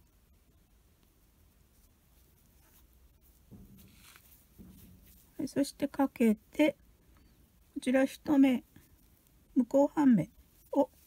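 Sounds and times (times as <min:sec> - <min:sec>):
yarn rustling over crochet hook: 0:00.8 - 0:06.9, 0:07.6 - 0:11.0.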